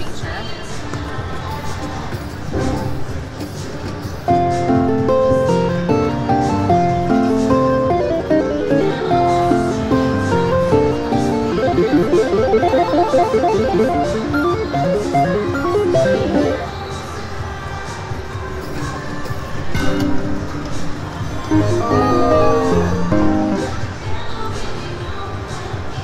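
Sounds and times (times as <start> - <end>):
plucked-string slot machine melody: 4.4 - 16.7, 21.5 - 23.8.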